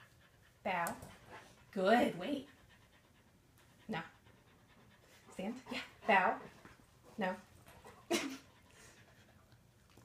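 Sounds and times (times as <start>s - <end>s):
dog panting: 0.0s - 10.0s.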